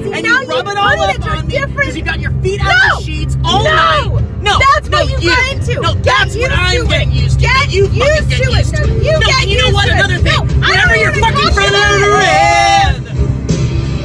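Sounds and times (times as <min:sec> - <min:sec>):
man and woman arguing: 0:00.0 - 0:13.2
road noise inside car: 0:00.0 - 0:13.6
car engine drone: 0:00.0 - 0:14.0.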